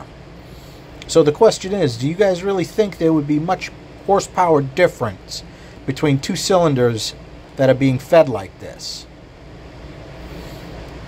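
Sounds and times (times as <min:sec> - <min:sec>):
machine low hum: 0:00.0 - 0:11.0.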